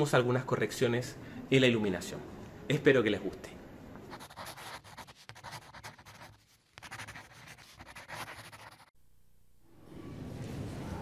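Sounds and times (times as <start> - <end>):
pen scratching on paper: 4.1 - 9.0.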